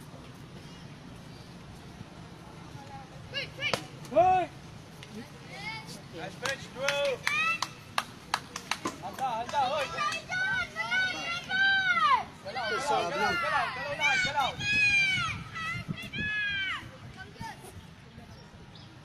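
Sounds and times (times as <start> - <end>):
children shouting and calling out: 9.7 - 17.6.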